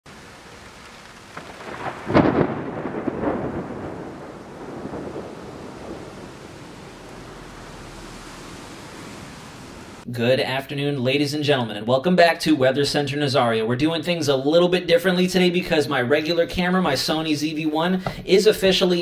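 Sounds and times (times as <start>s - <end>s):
steady rain hiss: 0.1s - 10.1s, 15.0s - 19.0s
thunderclap rumbling: 0.1s - 10.1s.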